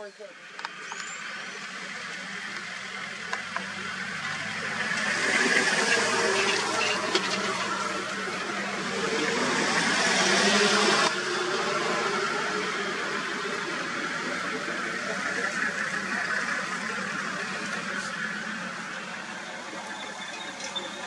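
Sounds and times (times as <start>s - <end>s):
vehicle engine running: 0.4s - 21.0s.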